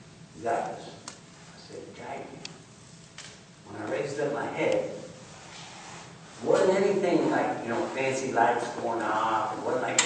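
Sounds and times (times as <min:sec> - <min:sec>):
man speaking: 0:03.6 - 0:05.2, 0:06.4 - 0:10.0.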